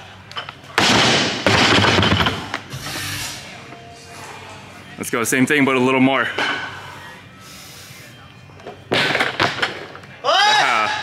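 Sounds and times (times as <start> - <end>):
barbell thud and plates rattling: 0.8 - 2.5
faint background music: 2.4 - 11.0.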